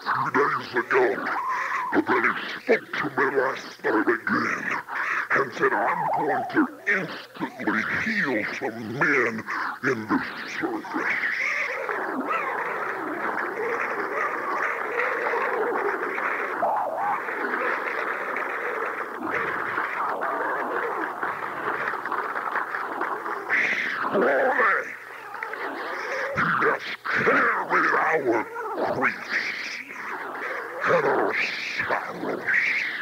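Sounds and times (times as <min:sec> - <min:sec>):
congregation shouting and praising: 0:00.0 - 0:33.0.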